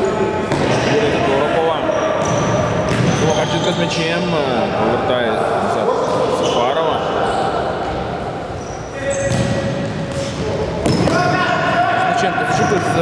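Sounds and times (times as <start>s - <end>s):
ball kicked and bouncing: 2.2s - 3.1s
players shouting: 4.8s - 13.0s.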